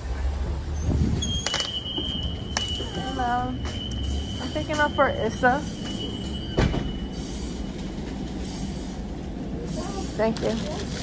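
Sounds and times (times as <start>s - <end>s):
restaurant room noise: 0.0s - 11.0s.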